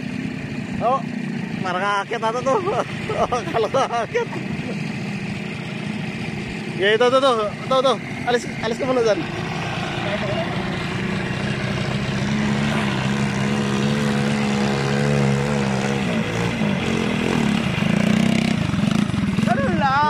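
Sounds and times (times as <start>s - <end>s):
quad bike engines running: 0.0s - 20.0s
man talking: 0.8s - 4.4s, 6.8s - 9.3s.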